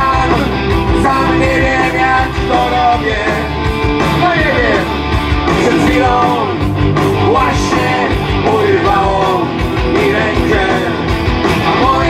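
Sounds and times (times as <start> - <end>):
drum beat: 0.0 - 12.0
punk rock band playing live: 0.0 - 12.0.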